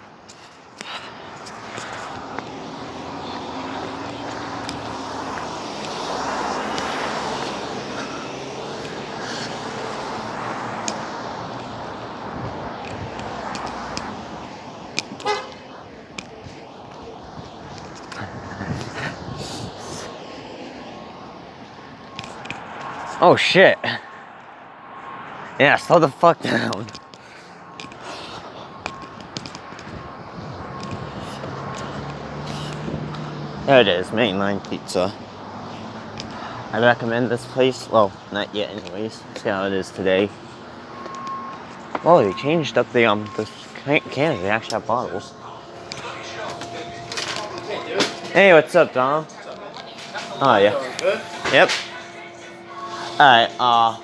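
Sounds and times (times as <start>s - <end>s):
cars driving past: 0.0s - 54.0s
street traffic: 0.0s - 54.0s.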